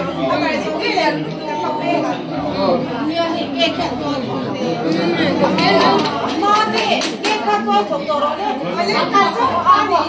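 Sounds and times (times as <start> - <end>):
conversational chatter: 0.0 - 10.0.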